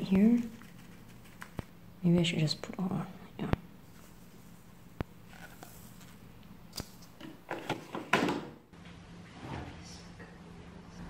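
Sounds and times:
drawer sliding shut: 7.5 - 8.6.

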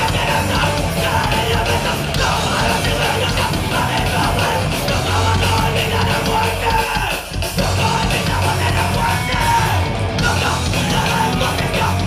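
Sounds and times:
bass guitar: 0.0 - 12.0
distorted electric guitars: 0.0 - 12.0
fast drums: 0.0 - 12.0
shouted vocals: 0.0 - 12.0.

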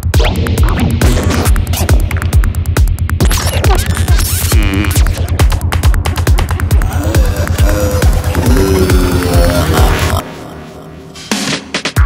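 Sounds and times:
rolling bassline: 0.0 - 12.0
kick drum: 4.6 - 10.0.

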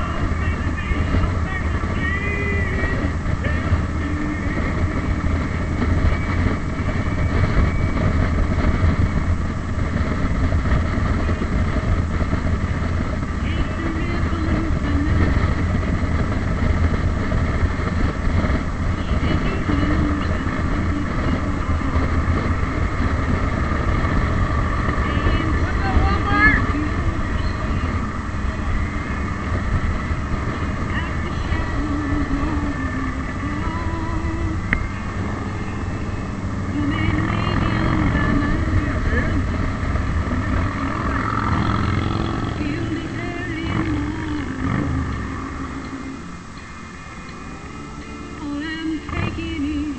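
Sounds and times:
motorcycle engine running: 0.0 - 49.9
wind and road noise: 0.0 - 49.9.

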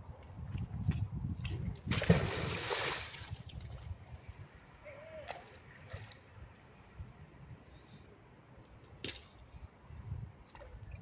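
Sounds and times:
magnet splashing into water: 1.9 - 3.6.

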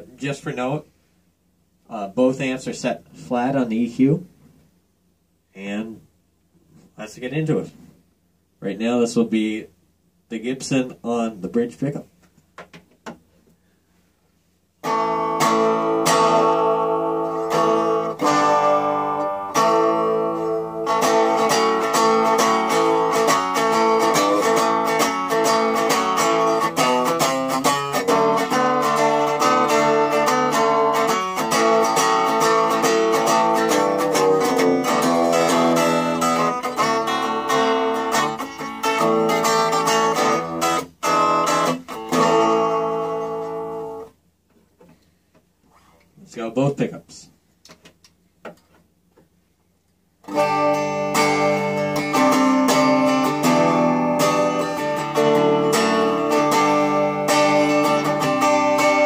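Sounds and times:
electric guitar playing: 14.8 - 44.2, 50.2 - 59.0.

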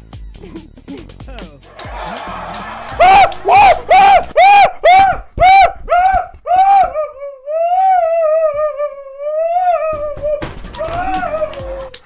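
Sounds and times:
man laughing in high falsetto: 3.0 - 11.9.

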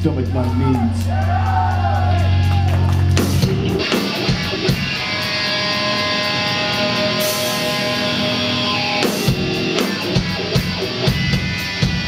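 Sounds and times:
loud distorted hardcore band: 0.0 - 12.0
electric guitar ringing: 2.1 - 12.0.

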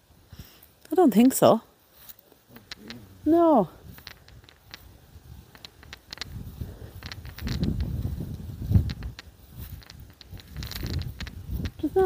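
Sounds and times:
footsteps on grass: 1.8 - 12.0
wind buffeting microphone: 2.8 - 12.0
light ticks: 3.9 - 12.0.

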